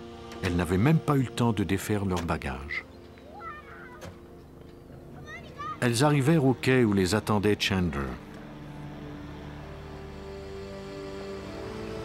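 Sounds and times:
low drone: 0:00.0 - 0:03.3, 0:05.8 - 0:12.0
sustained synthesizer notes: 0:05.8 - 0:12.0.

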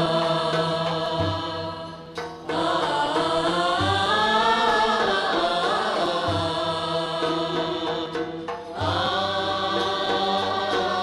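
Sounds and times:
ensemble singing in unison: 0:00.0 - 0:11.0
string accompaniment: 0:00.0 - 0:11.0.

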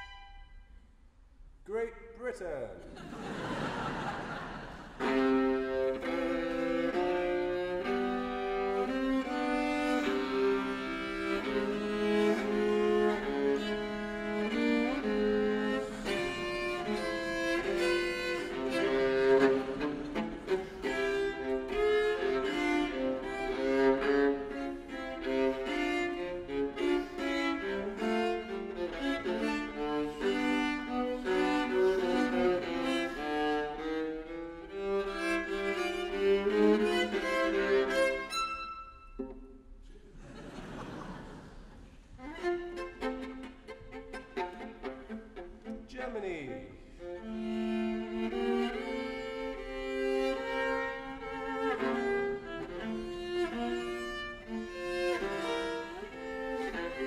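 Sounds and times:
solo bowed viola: 0:00.0 - 0:00.8, 0:04.8 - 0:39.8, 0:42.0 - 0:57.0.

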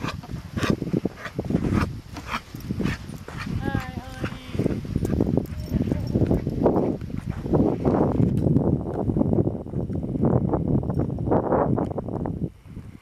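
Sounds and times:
footsteps crunching on sand: 0:00.0 - 0:08.4.

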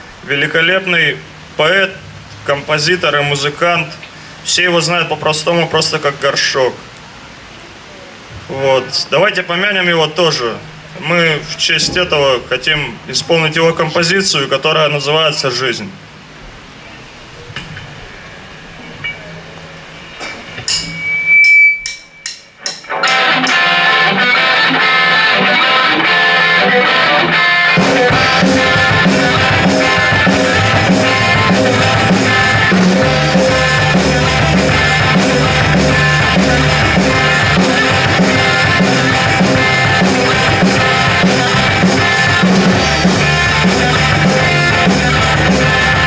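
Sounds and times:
electric guitars: 0:22.8 - 0:46.0
bass and drums: 0:25.5 - 0:46.0.

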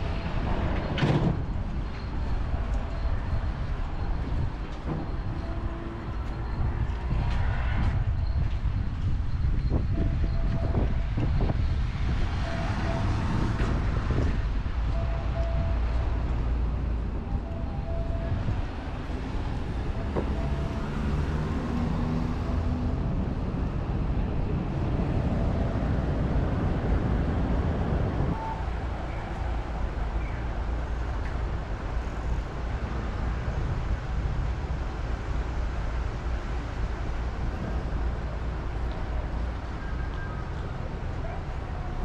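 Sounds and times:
traffic rumble: 0:00.0 - 0:42.0.

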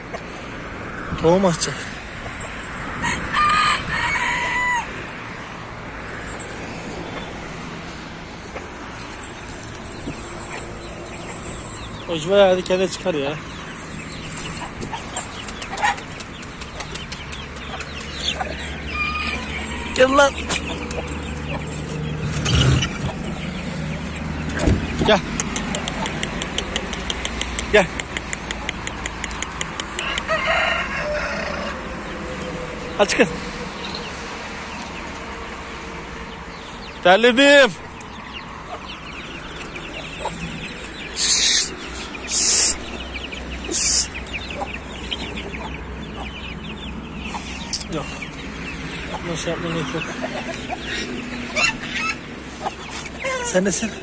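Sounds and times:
chickens calling: 0:00.0 - 0:54.0
rooster crowing: 0:02.9 - 0:05.2, 0:18.6 - 0:20.4, 0:30.0 - 0:32.6.

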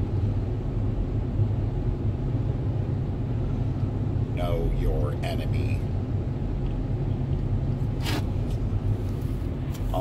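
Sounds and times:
road and engine rumble in cabin: 0:00.0 - 0:10.0.

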